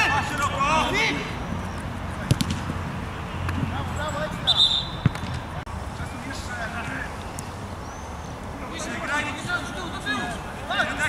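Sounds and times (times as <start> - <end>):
players shouting: 0.0 - 1.5, 8.6 - 11.0
short high whistle: 4.5 - 5.0.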